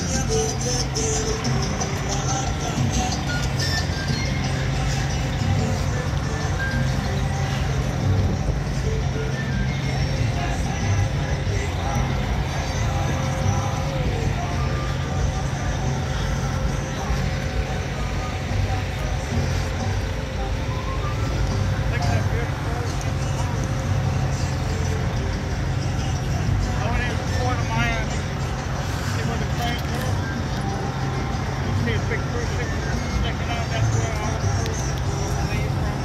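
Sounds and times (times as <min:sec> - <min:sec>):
faint voices: 0:00.0 - 0:36.0
low outdoor rumble: 0:00.0 - 0:36.0.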